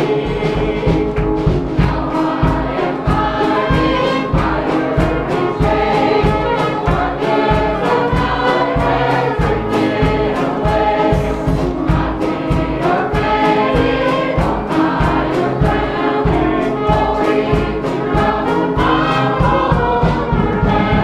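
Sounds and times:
choir singing gospel: 0.0s - 21.0s
instrumental backing with beat: 0.0s - 21.0s.

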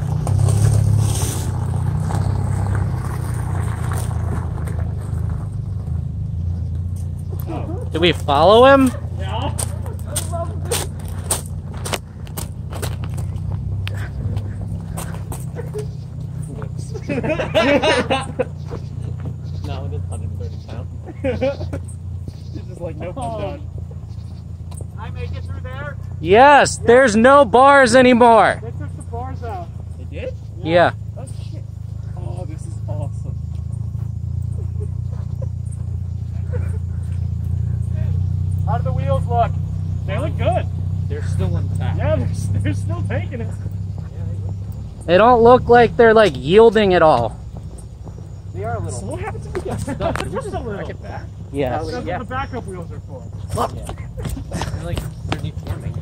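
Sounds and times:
car engine running at low revs: 0.0s - 56.0s
footsteps walking: 9.5s - 16.8s, 47.0s - 50.5s.

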